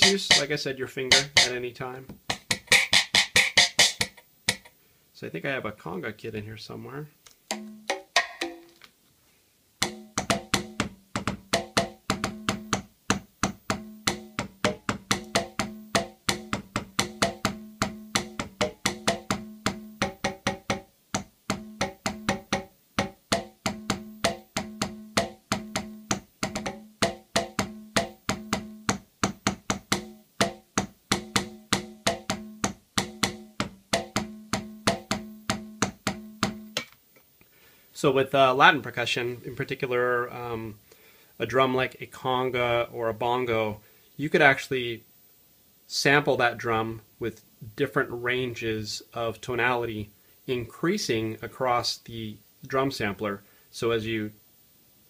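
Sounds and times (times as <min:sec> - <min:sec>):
conga drum hits: 0:00.0 - 0:00.5, 0:01.1 - 0:04.7, 0:07.5 - 0:08.8, 0:09.8 - 0:36.9.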